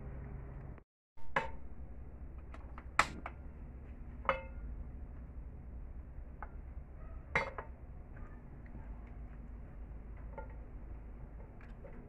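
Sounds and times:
frying pan knocking on grate: 4.2 - 4.7.

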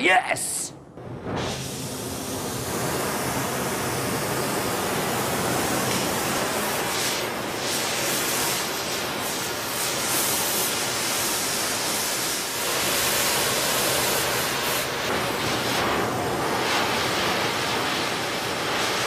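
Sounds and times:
torch flame hissing: 0.0 - 19.0.

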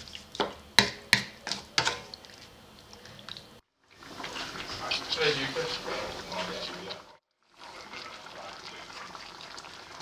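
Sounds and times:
pork sizzling and bubbling in a wok: 3.4 - 10.0.

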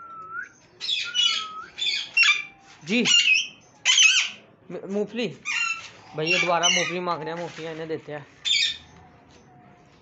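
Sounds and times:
parrots squawking: 0.8 - 4.4, 5.4 - 7.2, 8.4 - 8.8.

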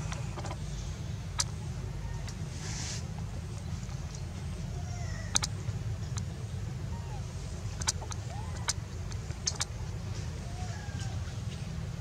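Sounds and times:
sharp clicks: 5.3 - 6.3, 7.8 - 9.8.

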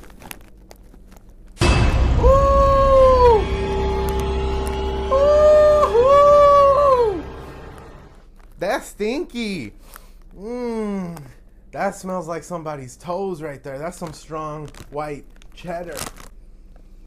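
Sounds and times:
low boom: 1.6 - 8.2
low drone: 1.6 - 8.2
wailing tones sliding down: 1.6 - 8.2.

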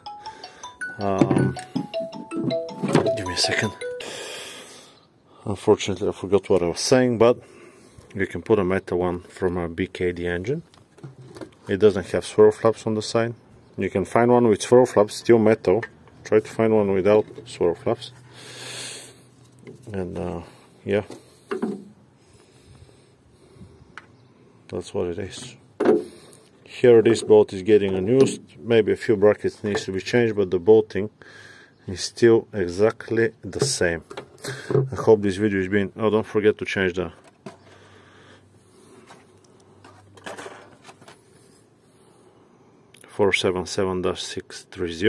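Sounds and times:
soft breath out: 22.2 - 24.3.

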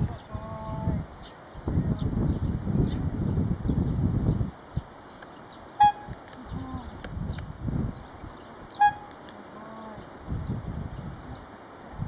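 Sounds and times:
hand-held horn honks: 5.8 - 6.2, 8.8 - 9.2.

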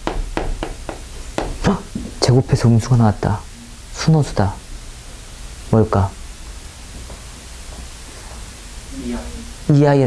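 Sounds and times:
chalk tapping on chalkboard: 0.0 - 2.1.

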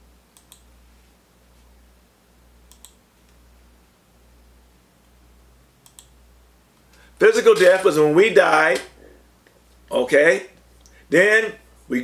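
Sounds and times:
low steady hum: 0.0 - 12.0
computer mouse clicks: 0.3 - 0.7, 2.7 - 3.0, 5.8 - 6.2.

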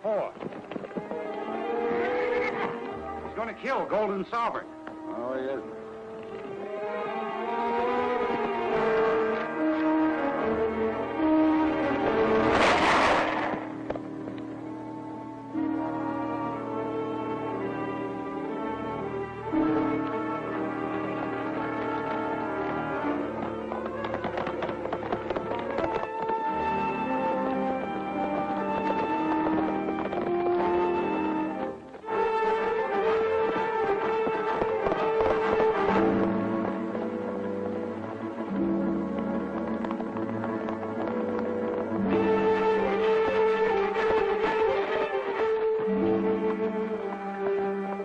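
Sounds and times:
horse hoofbeats: 0.0 - 48.0
orchestral film music: 0.0 - 48.0
loud noisy crash: 12.3 - 13.8
short sharp crack: 12.4 - 14.0.

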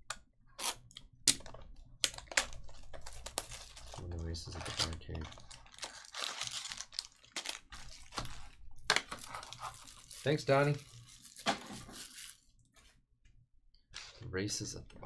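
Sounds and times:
plastic shrink wrap crinkling: 2.1 - 12.5.

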